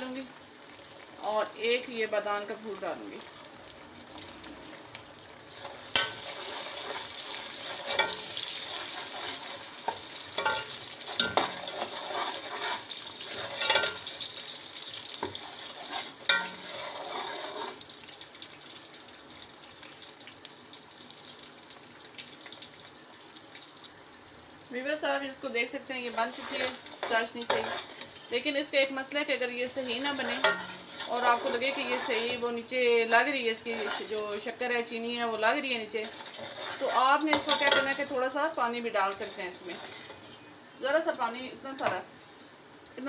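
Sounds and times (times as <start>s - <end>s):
syrup bubbling and sizzling in a pot: 0.0s - 43.0s
metal spoon clinking against pot: 7.9s - 8.3s, 10.4s - 11.5s, 13.6s - 14.0s, 30.2s - 30.8s.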